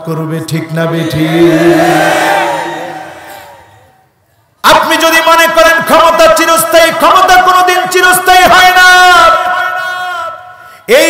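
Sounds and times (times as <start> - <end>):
man chanting over loudspeaker: 0.0 - 2.1.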